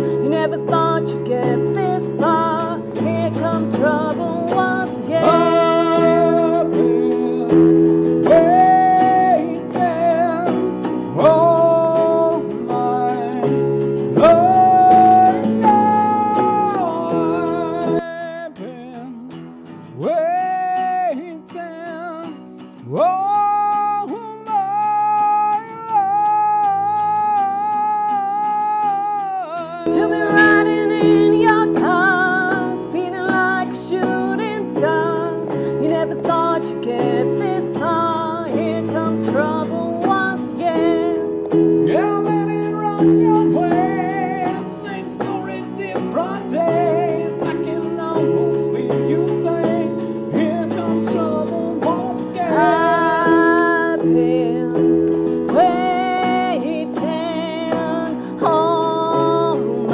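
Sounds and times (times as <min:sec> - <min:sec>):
electric keyboard: 0:00.0 - 0:18.6, 0:23.0 - 0:59.9
electric guitar: 0:00.0 - 0:59.9
woman and man singing: 0:00.0 - 0:59.9.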